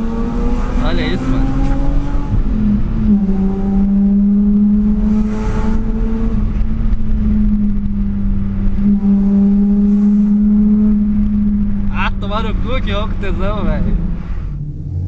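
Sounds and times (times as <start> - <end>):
car engine drone from inside: 0.0 - 15.0.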